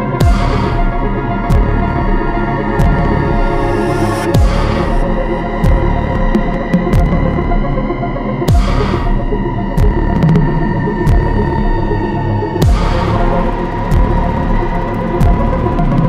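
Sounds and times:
deep kick drum: 0:00.0 - 0:16.0
droning synth: 0:00.0 - 0:16.0.

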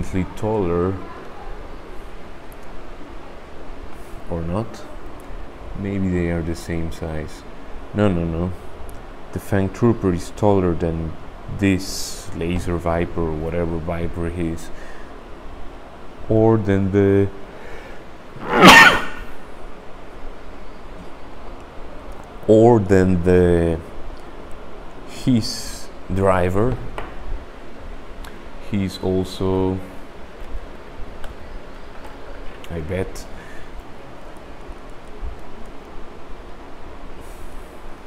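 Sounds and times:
background hiss: 0:00.0 - 0:31.8.

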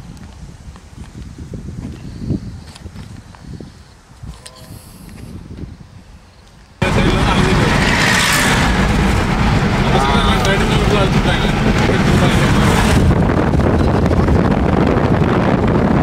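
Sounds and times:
car road and wind noise: 0:00.0 - 0:16.0.

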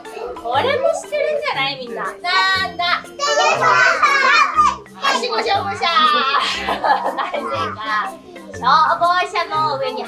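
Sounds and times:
young children calling out together: 0:03.1 - 0:06.6.

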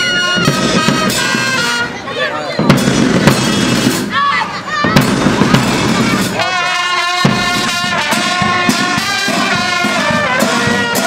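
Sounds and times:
brass instruments playing: 0:00.0 - 0:04.0, 0:05.0 - 0:11.0.

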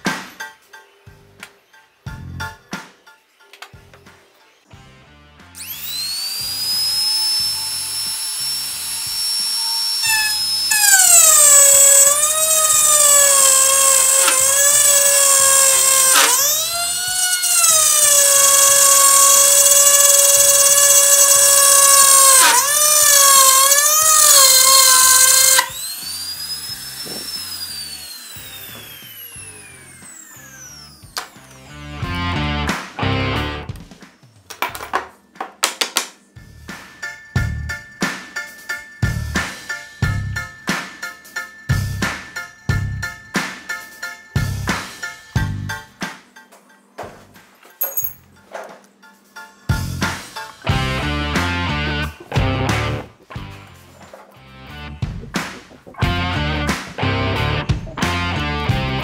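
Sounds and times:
wood router motor whining: 0:05.6 - 0:32.6.

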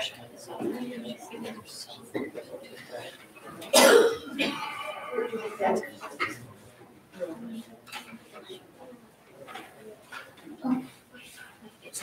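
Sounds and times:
low murmured conversation: 0:00.0 - 0:12.0
loud short cough: 0:03.7 - 0:04.8.

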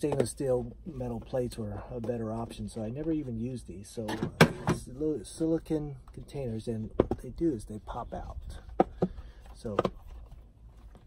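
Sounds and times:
man speaking: 0:00.0 - 0:08.7, 0:09.6 - 0:09.9.

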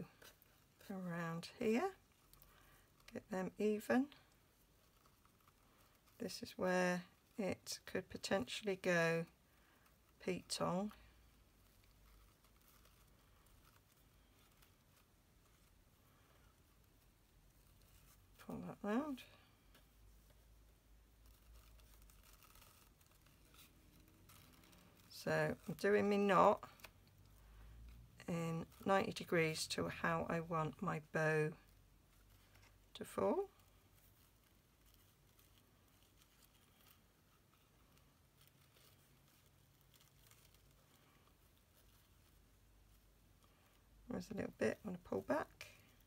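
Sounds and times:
ribbon rustling: 0:00.0 - 0:46.0.

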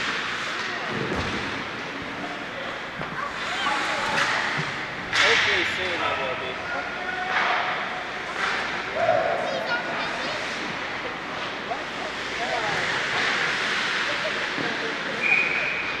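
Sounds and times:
rink background noise: 0:00.0 - 0:16.0
skating and stick noise: 0:00.0 - 0:16.0.

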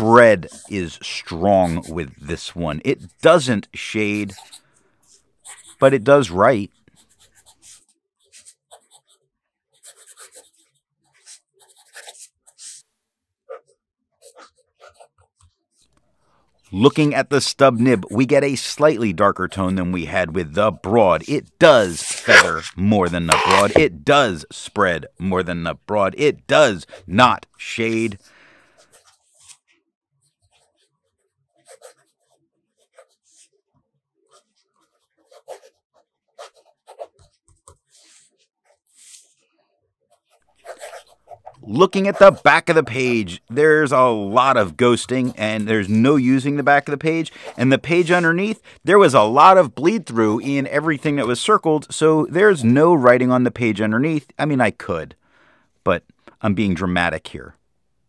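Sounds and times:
fountain pen scratching paper: 0:05.4 - 0:05.8, 0:06.8 - 0:12.8, 0:21.7 - 0:23.9, 0:28.8 - 0:29.6, 0:30.2 - 0:33.6, 0:34.2 - 0:39.4, 0:40.1 - 0:41.4.

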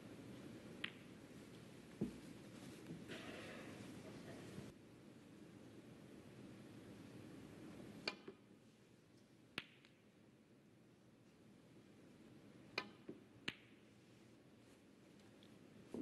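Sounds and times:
snooker balls clicking: 0:00.8 - 0:01.1, 0:12.7 - 0:13.8.

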